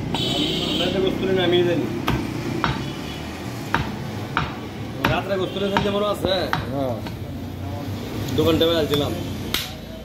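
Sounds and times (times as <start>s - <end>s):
knife chopping meat on wood: 2.0s - 3.0s, 3.6s - 7.3s.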